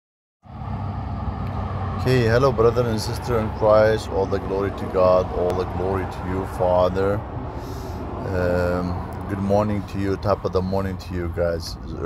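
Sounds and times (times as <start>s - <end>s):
traffic rumble: 0.4s - 12.0s.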